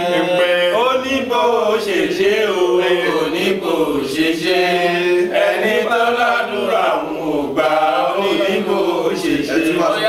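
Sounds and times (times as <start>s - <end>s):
men chanting together: 0.0s - 10.0s.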